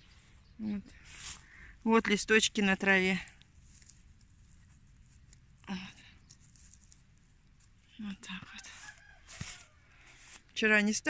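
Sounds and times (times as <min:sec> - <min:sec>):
fingers rustling a leaf: 0:00.1 - 0:10.6.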